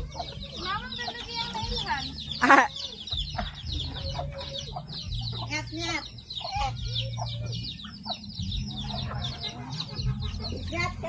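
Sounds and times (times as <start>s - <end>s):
chicken clucking: 0.0s - 11.0s
chickens peeping: 0.0s - 11.0s.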